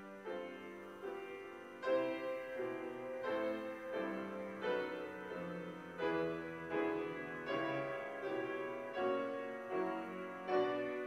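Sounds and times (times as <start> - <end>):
slow quiet piano: 0.0 - 11.0.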